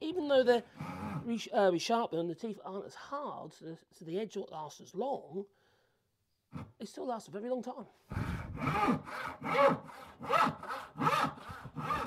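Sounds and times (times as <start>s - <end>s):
hand saw cutting wood: 0.8s - 1.3s, 8.1s - 12.0s.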